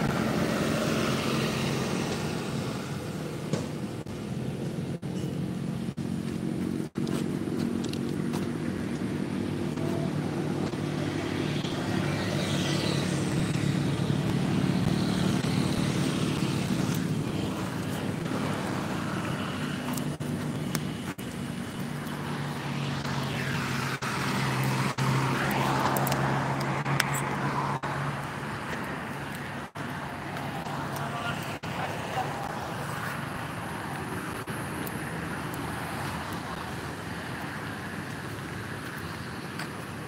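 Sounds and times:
engine running with low hum: 0:00.0 - 0:40.0.

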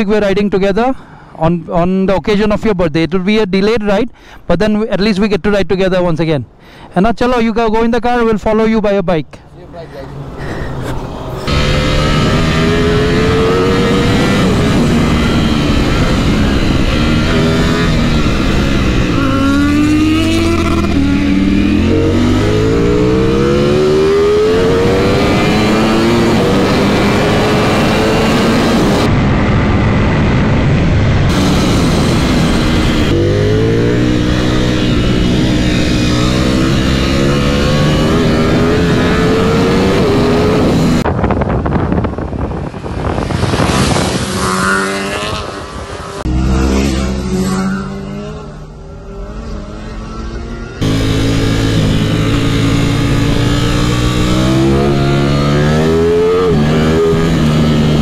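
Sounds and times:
motorcycle engine revving: 0:11.4 - 0:41.2, 0:41.9 - 0:58.0.

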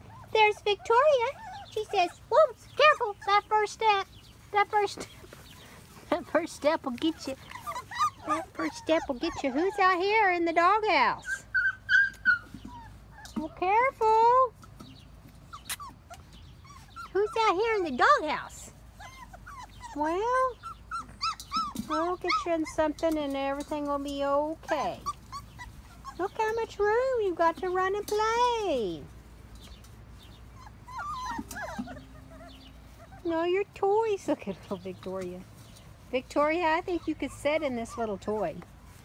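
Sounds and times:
puppies whimpering: 0:00.0 - 0:39.0.

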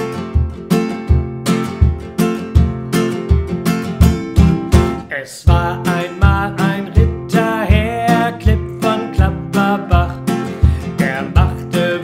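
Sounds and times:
classical guitar strumming: 0:00.0 - 0:12.0.

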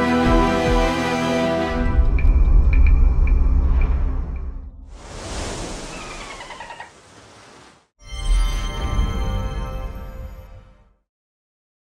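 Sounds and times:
rush of noise: 0:04.9 - 0:07.9.

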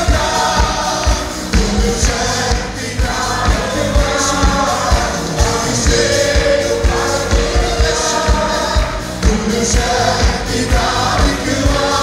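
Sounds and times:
group singing worship song: 0:00.0 - 0:12.0
instrumental backing with beat: 0:00.0 - 0:12.0.

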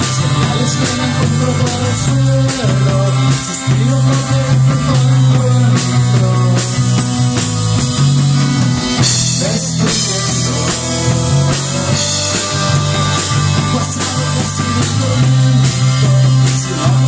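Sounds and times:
bass guitar: 0:00.0 - 0:17.0
drum kit steady beat: 0:00.0 - 0:17.0
electric guitars: 0:00.0 - 0:17.0.

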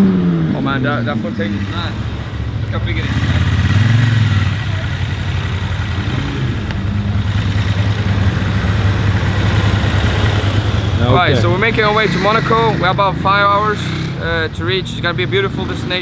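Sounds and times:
car engines idling in traffic: 0:00.0 - 0:16.0.

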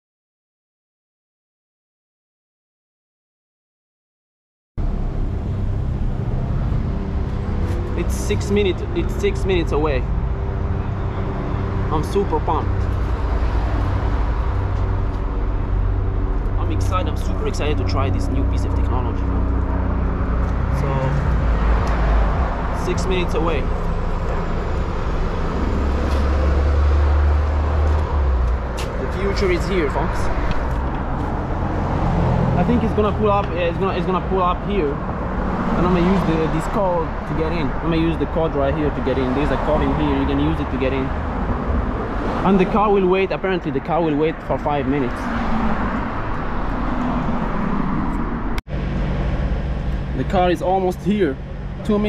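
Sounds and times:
low hum: 0:04.8 - 0:33.9
car passing: 0:04.8 - 0:52.0
road noise: 0:04.8 - 0:52.0
vehicle rumble: 0:04.8 - 0:52.0.

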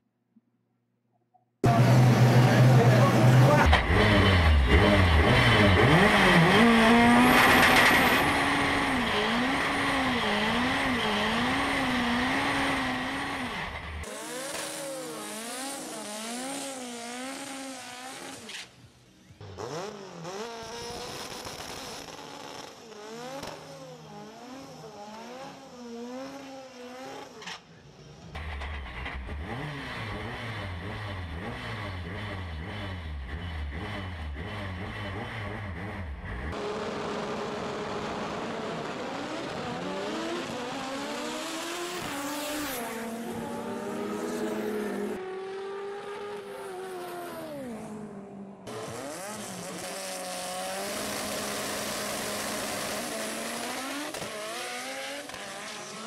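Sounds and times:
racing car engine at full throttle: 0:01.6 - 0:56.0.

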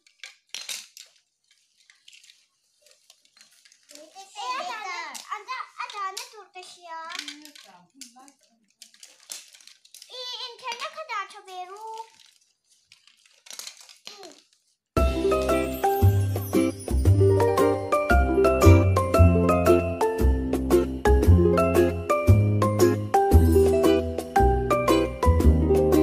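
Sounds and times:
plastic toys clattering: 0:00.0 - 0:16.7.

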